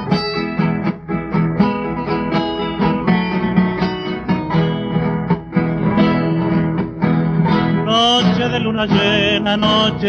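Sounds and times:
guitar plucking and strumming: 0.0 - 10.0.

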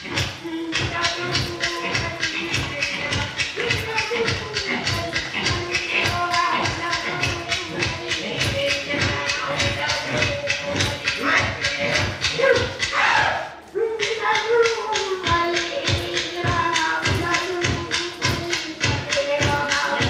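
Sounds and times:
clapstick beats: 0.0 - 13.2, 14.0 - 20.0
person singing: 0.0 - 20.0.

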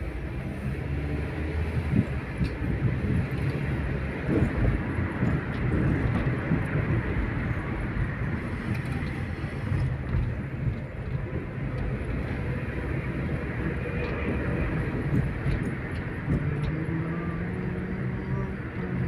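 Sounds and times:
car engine rumble: 0.0 - 19.0.

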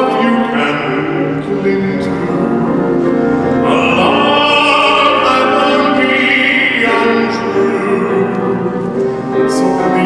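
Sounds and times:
grand piano: 0.0 - 10.0
man singing operatically: 0.0 - 10.0.

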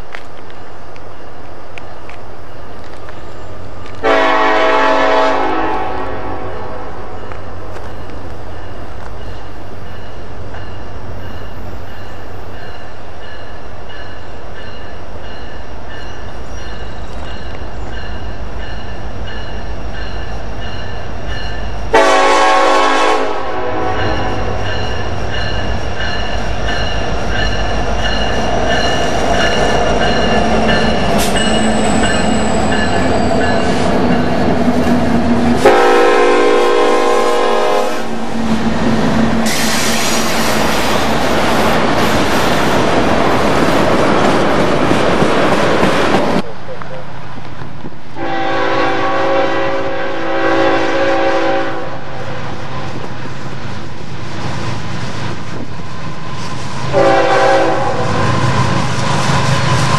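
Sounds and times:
freight train rumble: 0.0 - 59.9
loud train wheel noise: 0.0 - 59.9
locomotive air horn blasts: 4.0 - 7.2, 21.9 - 24.6, 35.6 - 38.1, 48.2 - 52.2, 56.9 - 58.2
high wheel squeal: 28.1 - 34.4.

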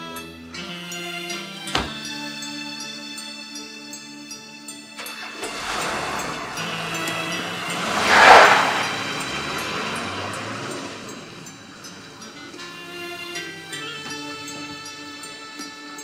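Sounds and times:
suv driving past: 5.0 - 14.8.

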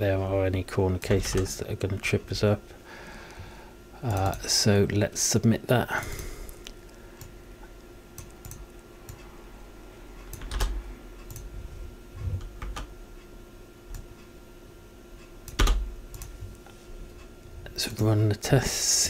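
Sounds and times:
faint steady hum: 0.0 - 19.0
computer keyboard clicks: 8.2 - 9.2, 10.3 - 11.5, 15.5 - 16.3.

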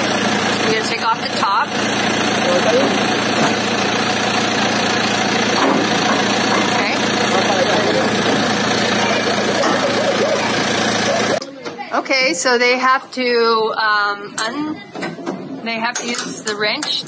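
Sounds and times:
vehicle engine idling: 0.0 - 11.4
people talking: 0.6 - 1.7, 2.4 - 3.0, 6.5 - 17.0.

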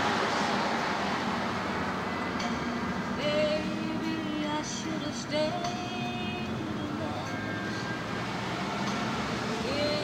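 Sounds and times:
car road noise: 0.0 - 10.0.

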